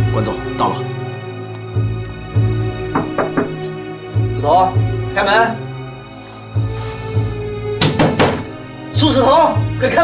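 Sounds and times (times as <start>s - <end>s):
background music: 0.0s - 10.0s
knocks on door: 2.8s - 3.7s, 7.8s - 8.5s.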